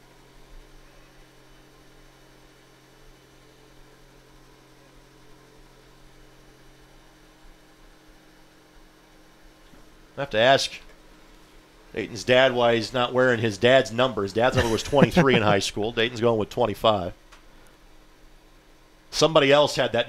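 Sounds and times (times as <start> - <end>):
faint mains hum: 0.0 - 20.0.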